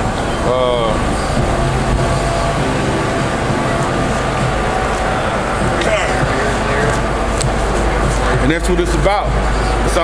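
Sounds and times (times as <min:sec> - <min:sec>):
street traffic rumble: 0:00.0 - 0:10.0
vehicle engine running: 0:00.0 - 0:10.0.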